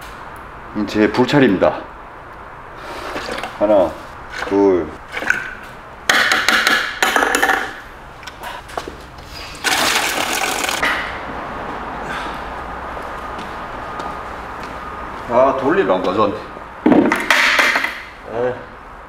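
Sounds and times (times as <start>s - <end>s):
hose water filling a bucket: 9.5s - 10.8s.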